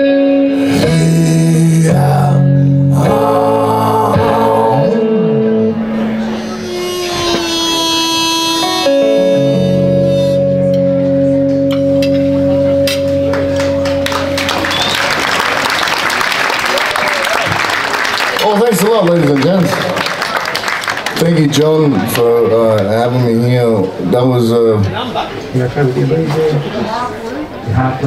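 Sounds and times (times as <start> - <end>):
electric guitar chord ringing: 0.0 - 14.9
harmonica note: 0.0 - 15.0
audience applause: 13.3 - 22.3.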